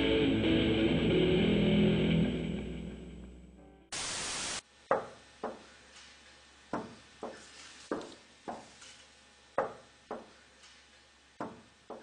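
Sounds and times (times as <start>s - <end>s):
electric guitar notes: 0.0s - 3.9s
burst of hissing static: 3.9s - 4.7s.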